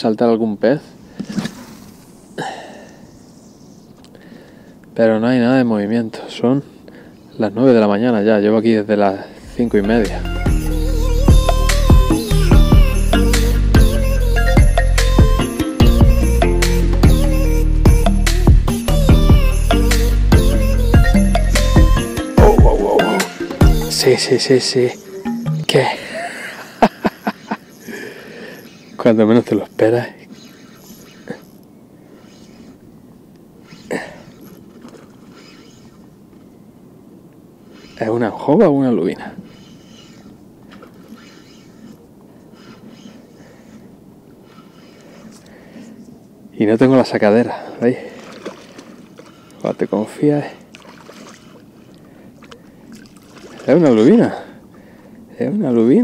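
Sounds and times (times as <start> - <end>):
small waves lapping: 0.7 - 5.0, 22.4 - 56.0
man exclaiming in surprise: 22.4 - 23.3
man laughing: 22.4 - 23.4, 25.9 - 28.2
sharp bursts of breath: 27.8 - 29.0, 41.2 - 46.0.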